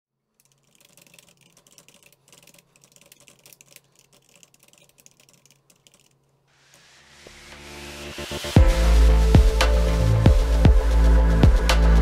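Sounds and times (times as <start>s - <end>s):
fast typing on keyboard: 0.4s - 6.2s.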